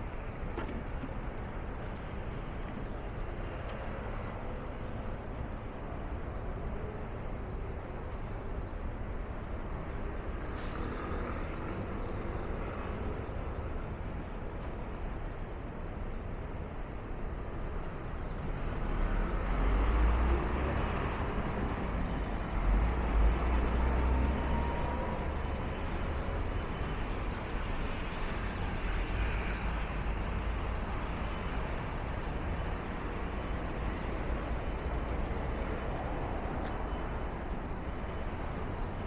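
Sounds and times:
road noise: 0.0s - 39.0s
cars passing: 18.4s - 39.0s.

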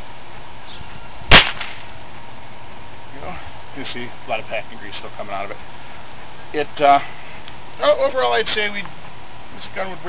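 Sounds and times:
air rifle shot crack: 1.3s - 2.0s.

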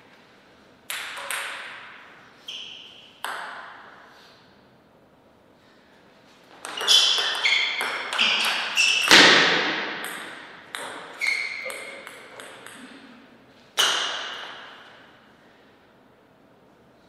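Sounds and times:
heavy table tennis hit: 0.9s - 2.2s, 3.2s - 4.0s, 6.6s - 13.2s, 13.8s - 15.2s.

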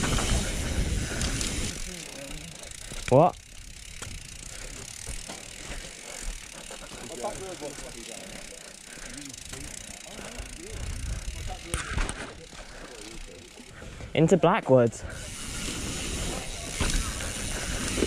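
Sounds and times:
tyre and wind noise: 0.0s - 1.7s
bike knocks and rumbles: 3.8s - 6.4s, 16.4s - 18.0s.

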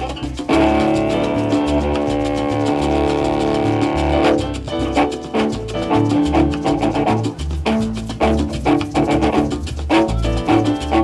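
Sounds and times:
repeating bass note: 0.0s - 11.0s
rhythmic chord strikes: 0.0s - 11.0s
salsa band playing: 0.0s - 11.0s.

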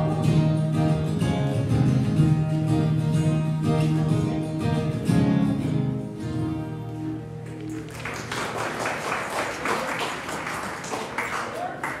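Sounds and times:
guitar music: 0.0s - 8.0s
scattered applause: 7.4s - 12.0s.

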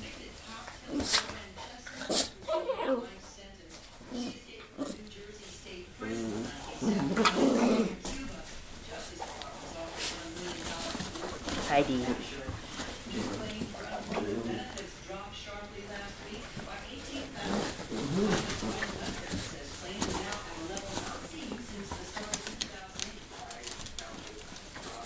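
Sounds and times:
dog vocal sounds: 0.8s - 3.2s, 6.0s - 8.2s
dog play growl: 4.0s - 5.2s, 6.0s - 8.4s, 10.0s - 15.0s, 17.1s - 22.4s.

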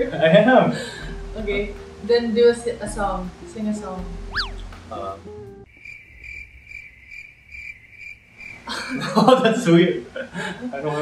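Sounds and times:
crickets chirping: 5.6s - 9.2s.

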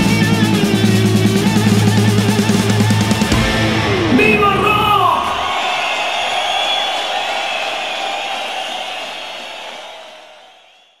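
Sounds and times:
live rock show noise: 0.0s - 9.1s.

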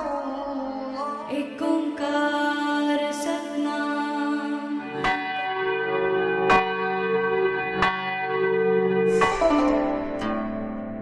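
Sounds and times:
sustained bell-like drone: 4.6s - 11.0s
bells ringing: 5.0s - 11.0s.

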